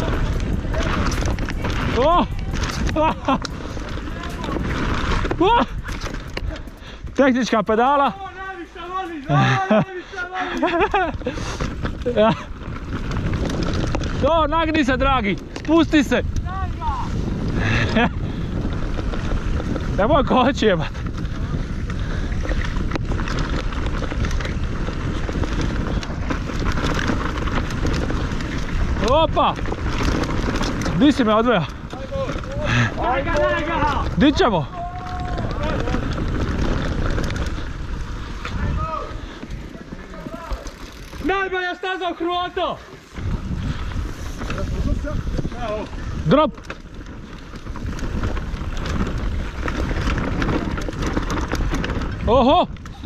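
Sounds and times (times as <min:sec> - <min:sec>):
bike rattling: 0:00.0 - 0:53.0
bike tyre rumble: 0:00.0 - 0:53.0
wind buffeting microphone: 0:00.0 - 0:53.0.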